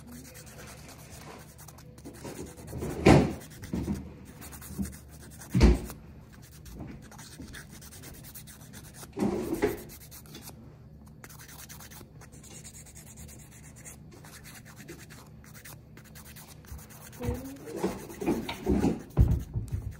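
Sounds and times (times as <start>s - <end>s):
nail file scratching fingernail: 0.0s - 19.9s.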